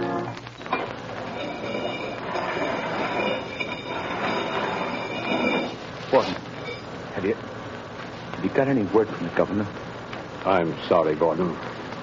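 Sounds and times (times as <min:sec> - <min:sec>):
faint high squealing tones: 0:00.0 - 0:06.9.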